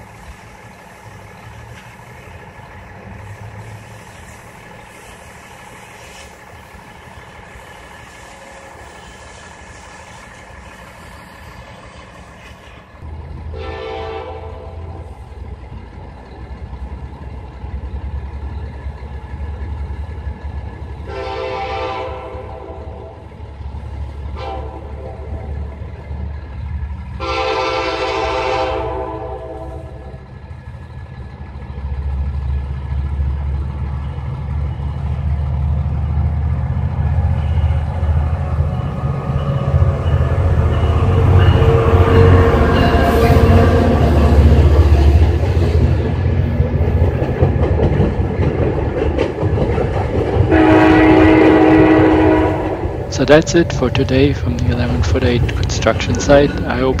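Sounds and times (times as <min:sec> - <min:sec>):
train wheels clattering: 0:00.0 - 0:13.8, 0:30.1 - 0:57.0
locomotive engine rumble: 0:00.0 - 0:57.0
train horn blasts: 0:13.5 - 0:15.1, 0:21.0 - 0:23.3, 0:24.3 - 0:25.5, 0:27.2 - 0:30.2, 0:39.7 - 0:44.4, 0:50.5 - 0:53.4.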